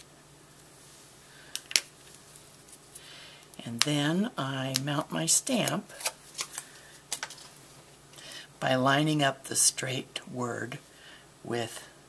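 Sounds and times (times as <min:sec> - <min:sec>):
quiet rustling: 0:01.8 - 0:03.7.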